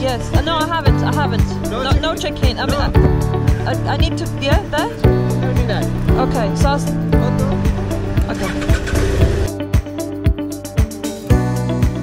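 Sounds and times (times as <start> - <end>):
music with steady beat: 0.0 - 12.0.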